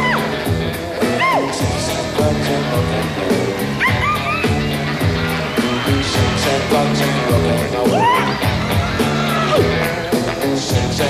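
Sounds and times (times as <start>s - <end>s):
live rock band playing: 0.0s - 11.0s
steady drum beat: 0.0s - 11.0s.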